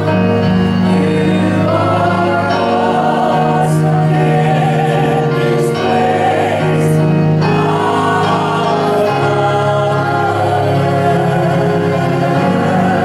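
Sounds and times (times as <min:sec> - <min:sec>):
electric keyboard chords: 0:00.0 - 0:13.0
vocal group singing in harmony: 0:00.0 - 0:13.0.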